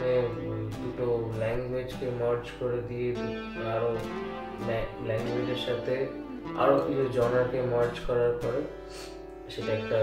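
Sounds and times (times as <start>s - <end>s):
man's voice: 0.0s - 8.8s, 9.5s - 10.0s
guitar music: 0.0s - 10.0s.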